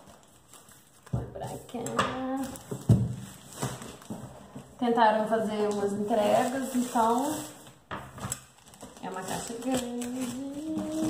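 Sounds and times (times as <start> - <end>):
plastic wrapping crinkling: 0.0 - 11.0
woman talking: 1.2 - 2.6, 4.8 - 7.5, 9.0 - 11.0.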